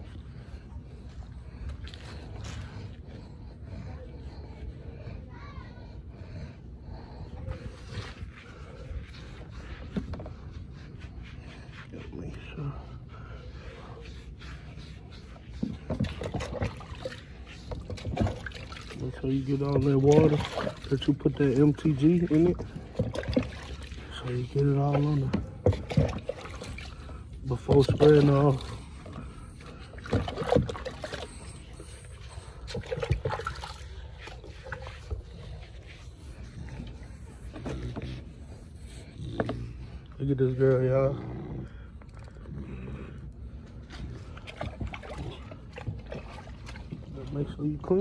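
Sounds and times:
rubber brush scrubbing dog: 0:00.0 - 0:48.0
water sloshing: 0:00.0 - 0:48.0
splashes and knocks: 0:15.6 - 0:19.0, 0:19.7 - 0:21.1, 0:22.3 - 0:27.0, 0:29.9 - 0:31.4, 0:43.9 - 0:47.2.

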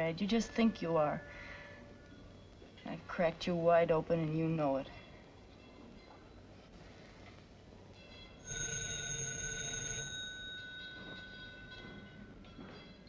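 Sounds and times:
telephone bell ringing: 0:08.2 - 0:12.9.

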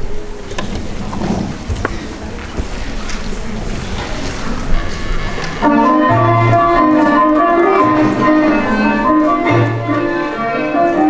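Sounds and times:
faint voices: 0:00.0 - 0:11.0
keyboard music with held chords: 0:05.6 - 0:11.0.

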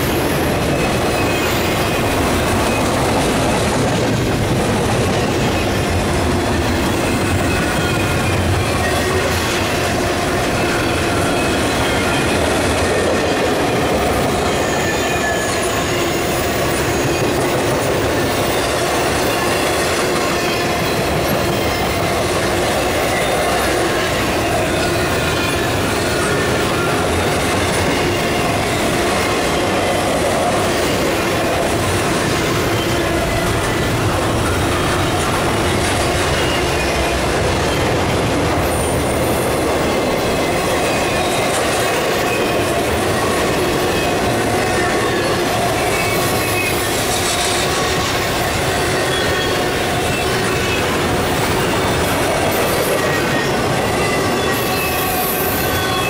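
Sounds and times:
freight train wheels rumbling: 0:00.0 - 0:56.0.

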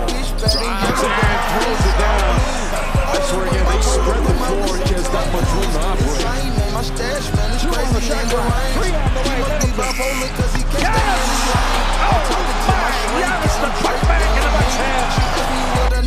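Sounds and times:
arena crowd cheering: 0:00.0 - 0:05.8, 0:08.7 - 0:16.0
hip-hop beat with heavy bass: 0:00.0 - 0:16.0.

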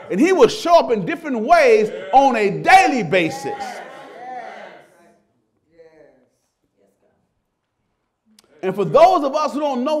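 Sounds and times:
man speaking: 0:00.0 - 0:03.8, 0:08.4 - 0:10.0.

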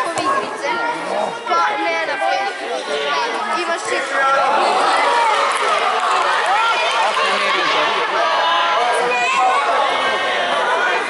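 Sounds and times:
children shouting: 0:04.1 - 0:11.0.

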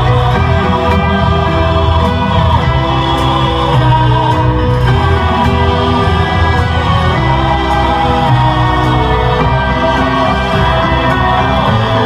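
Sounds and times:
choral singing: 0:00.0 - 0:12.0
heavy bass: 0:00.0 - 0:12.0
live band music: 0:00.0 - 0:12.0.

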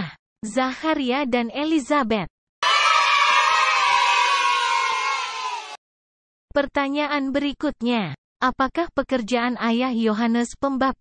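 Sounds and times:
crowd cheering: 0:02.6 - 0:05.8.

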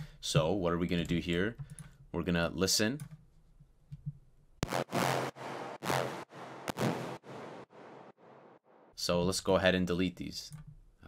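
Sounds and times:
electronic dance music: 0:04.6 - 0:07.4
sharp clicks: 0:06.7 - 0:07.0.

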